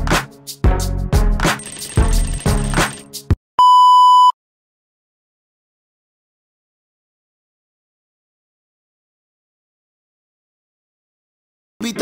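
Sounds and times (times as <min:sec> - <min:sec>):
background music: 0:00.0 - 0:03.4, 0:11.8 - 0:12.0
electronic censor bleep: 0:03.6 - 0:04.4.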